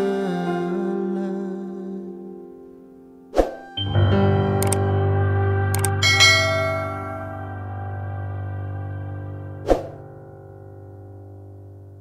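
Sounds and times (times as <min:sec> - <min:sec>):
held background music chord: 0:00.0 - 0:12.0
bell chime: 0:03.7 - 0:05.0, 0:05.8 - 0:07.7.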